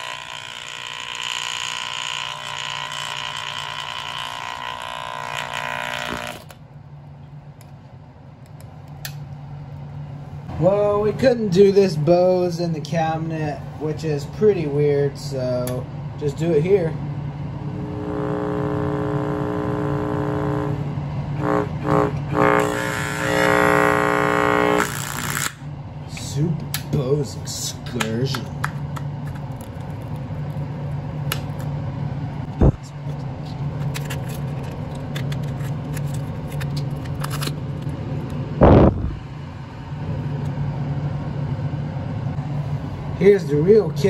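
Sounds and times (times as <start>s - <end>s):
speaker buzzing loudly: 0.0s - 6.7s, 15.6s - 25.7s, 32.4s - 40.6s.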